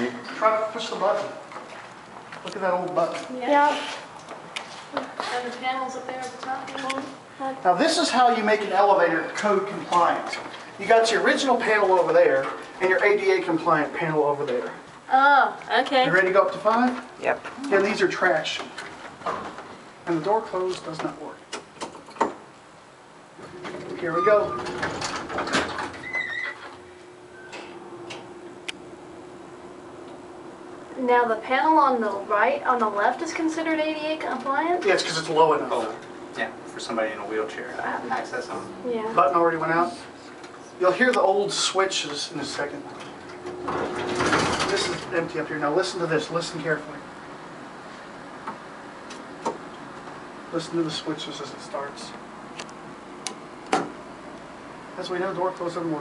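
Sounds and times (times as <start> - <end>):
steady hum: 0.0 - 56.0
elevator doors sliding shut: 23.4 - 28.4, 43.0 - 45.1
elevator door squeal: 23.7 - 26.7, 27.3 - 27.7.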